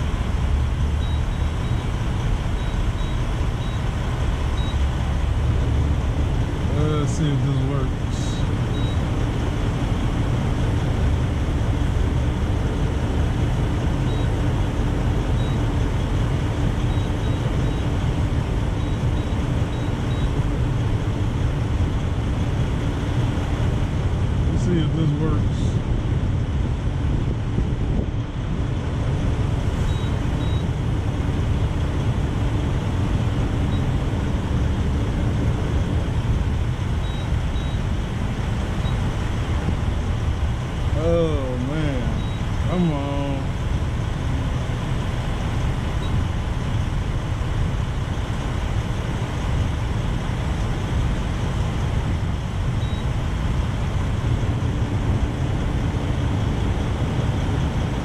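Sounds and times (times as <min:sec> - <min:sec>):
diesel truck engines idling: 0:00.0 - 0:58.0.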